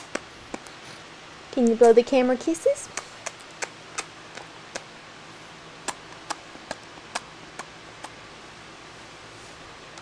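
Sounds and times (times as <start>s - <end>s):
lips kissing smacks: 2.9s - 4.9s.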